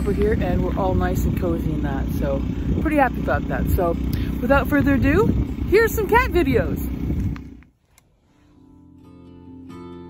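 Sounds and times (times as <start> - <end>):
low rumbling on microphone: 0.0 - 7.6
guitar music: 8.4 - 10.0.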